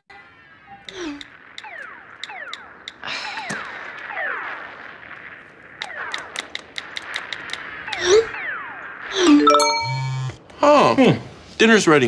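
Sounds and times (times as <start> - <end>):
short falling electronic chirps: 9.1 - 10.4.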